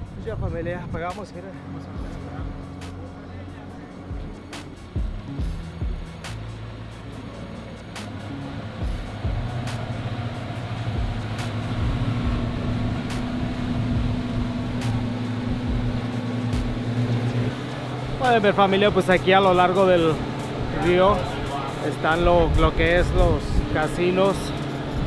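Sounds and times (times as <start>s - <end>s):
churning wake hiss: 0.0s - 25.0s
outboard motors running: 0.0s - 25.0s.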